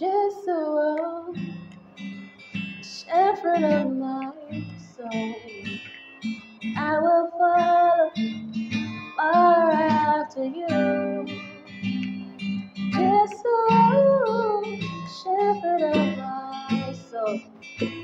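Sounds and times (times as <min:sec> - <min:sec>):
woman singing: 0:00.0 - 0:01.7, 0:02.8 - 0:05.9, 0:06.7 - 0:11.6, 0:12.9 - 0:18.0
strummed acoustic guitar: 0:01.0 - 0:18.0.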